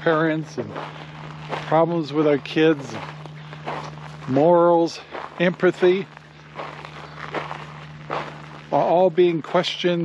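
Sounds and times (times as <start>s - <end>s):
footsteps on gravel: 0.0s - 10.0s
low hum: 0.0s - 10.0s.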